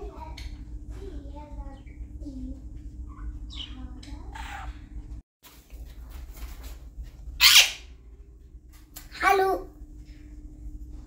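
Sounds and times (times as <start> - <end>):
steady low hum: 0.0 - 11.0
parrot squawk: 3.1 - 4.8, 7.4 - 7.9.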